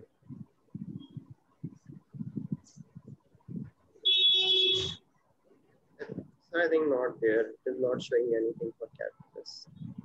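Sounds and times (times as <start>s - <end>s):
high-pitched electronic buzzer tone: 4.1s - 5.0s.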